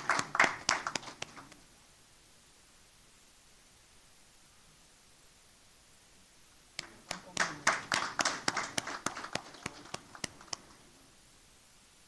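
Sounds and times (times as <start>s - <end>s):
audience clapping: 0.0s - 1.6s, 6.8s - 10.9s.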